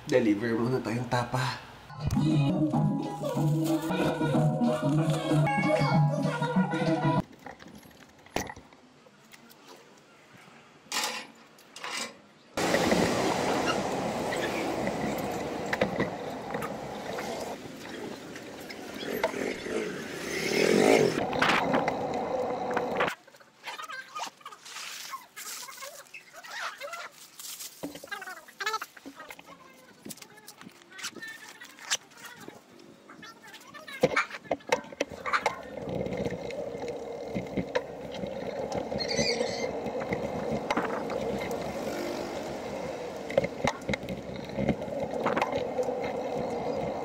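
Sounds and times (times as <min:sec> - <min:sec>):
street traffic: 0:08.7 - 0:23.2, 0:31.8 - 0:47.0
motor vehicle passing close: 0:12.6 - 0:17.6, 0:36.4 - 0:47.0
rumbling road noise: 0:12.6 - 0:23.1, 0:35.1 - 0:47.0.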